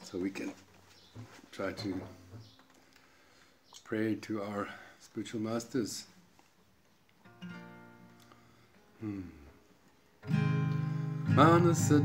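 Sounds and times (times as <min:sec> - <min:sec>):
acoustic guitar strumming: 0:07.2 - 0:09.0, 0:10.0 - 0:12.0.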